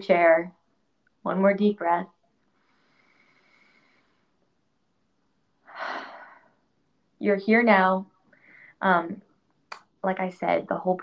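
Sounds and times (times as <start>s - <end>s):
woman breathing in: 2.5s - 4.4s, 8.3s - 8.8s
woman exhaling: 5.7s - 6.5s.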